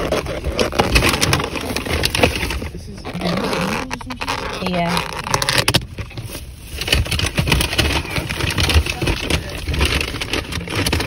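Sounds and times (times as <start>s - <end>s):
car engine rumble inside cabin: 0.0s - 11.0s
plastic container crackling: 0.0s - 11.0s.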